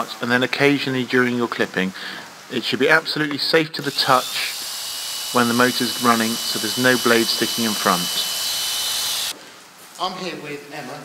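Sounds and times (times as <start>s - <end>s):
electric clippers whining: 3.9s - 9.3s.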